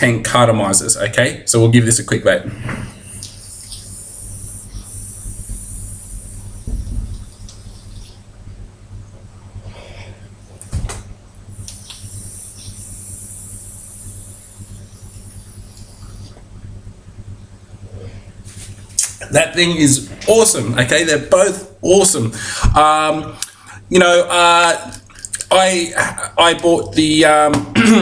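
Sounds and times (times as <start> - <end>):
e-cigarette draw hiss: 3.0 - 8.1, 11.6 - 16.3.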